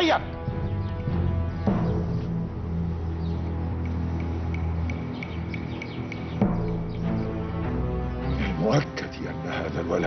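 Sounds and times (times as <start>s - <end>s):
dramatic low orchestral score: 0.0s - 10.0s.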